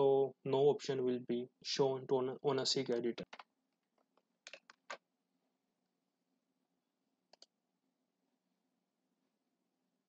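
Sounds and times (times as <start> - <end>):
computer mouse clicks: 3.2 - 5.0, 7.3 - 7.5.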